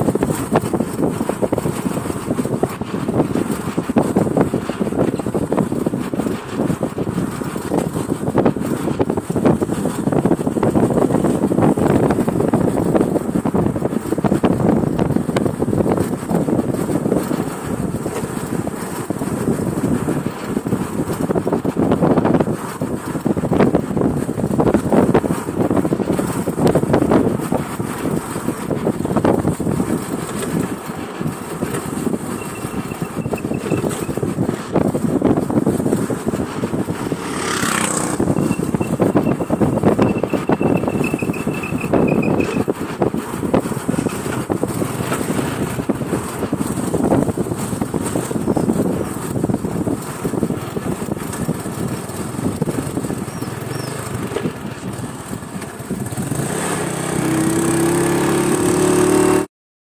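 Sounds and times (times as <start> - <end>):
motorcycle engine running: 0.0 - 59.5
wind buffeting microphone: 0.0 - 59.5.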